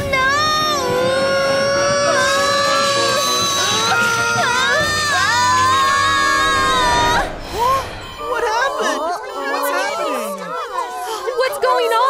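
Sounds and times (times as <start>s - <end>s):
background music: 0.0s - 12.0s
cartoon voices crying out: 8.2s - 12.0s.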